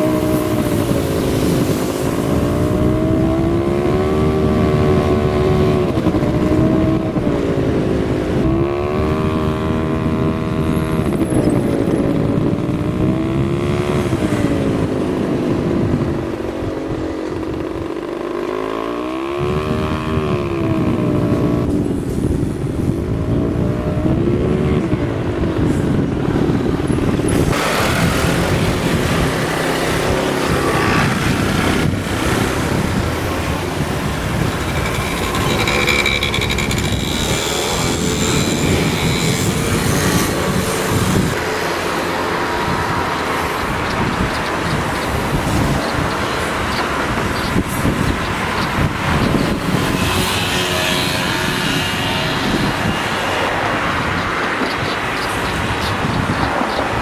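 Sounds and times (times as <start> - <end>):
steady rush of noise: 0.0 - 11.1, 19.3 - 57.0.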